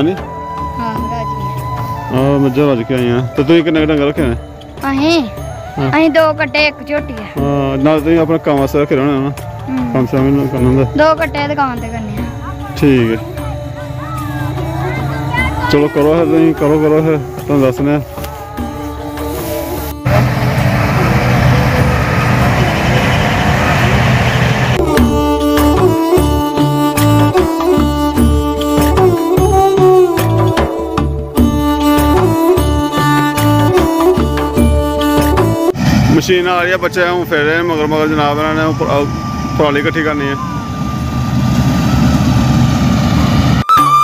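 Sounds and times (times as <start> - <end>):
music: 0.0 - 21.9, 24.8 - 40.8, 43.6 - 44.0
combine harvester engine running: 18.1 - 43.7.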